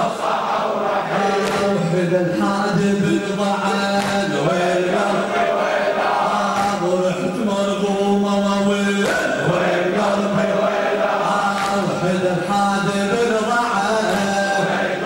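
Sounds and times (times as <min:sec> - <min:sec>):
men chanting a lament: 0:00.0 - 0:15.0
chest beating slaps: 0:01.4 - 0:01.9, 0:03.9 - 0:04.6, 0:06.5 - 0:07.1, 0:09.0 - 0:09.4, 0:11.5 - 0:12.1, 0:14.0 - 0:14.8.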